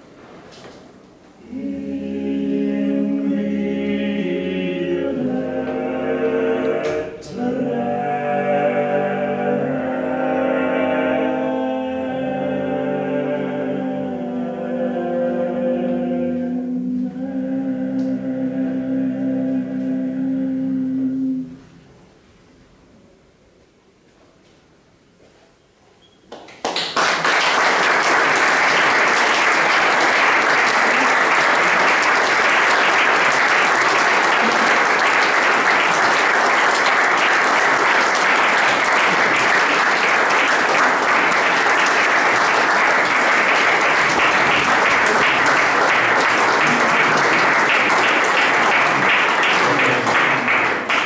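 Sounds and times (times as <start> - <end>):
audience applauding: 26.3 - 51.0.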